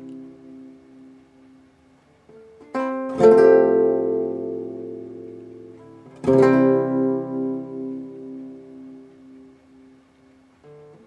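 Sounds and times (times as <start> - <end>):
acoustic guitar chords strummed: 2.5 - 11.0.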